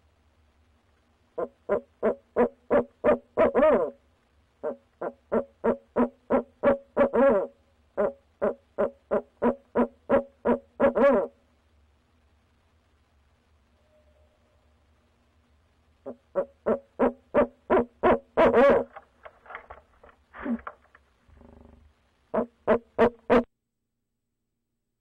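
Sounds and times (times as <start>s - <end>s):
owl hooting: 1.4s - 4.0s, 4.6s - 11.4s, 16.0s - 19.0s, 22.3s - 23.5s.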